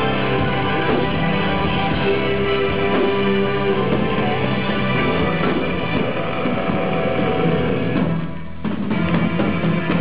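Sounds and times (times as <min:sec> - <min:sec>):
metal band droning chord: 0:00.0 - 0:08.2.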